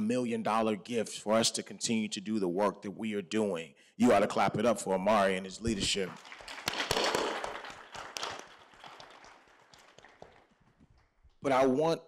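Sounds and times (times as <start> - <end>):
audience applauding: 5.8 - 11.3.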